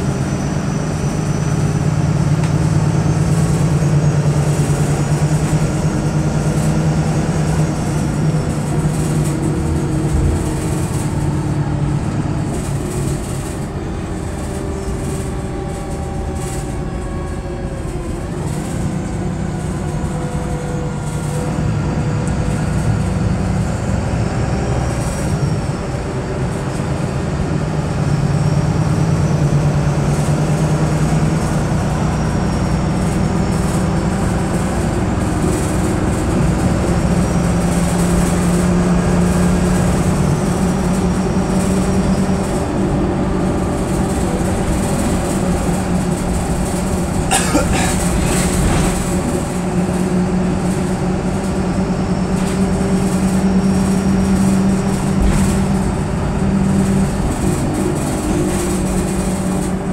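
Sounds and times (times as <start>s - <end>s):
bus engine and road noise: 0.0s - 59.9s.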